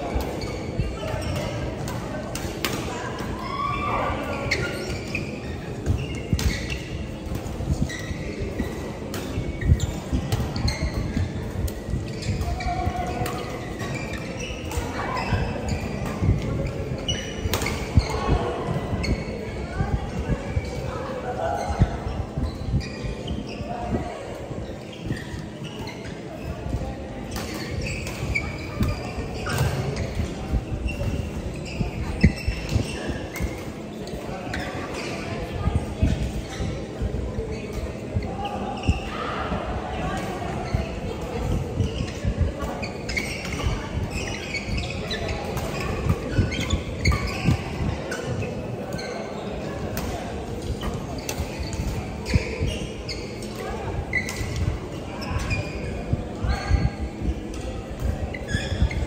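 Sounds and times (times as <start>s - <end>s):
players' footwork on courts: 0.0s - 23.7s, 39.7s - 59.0s
people's voices: 0.0s - 59.0s.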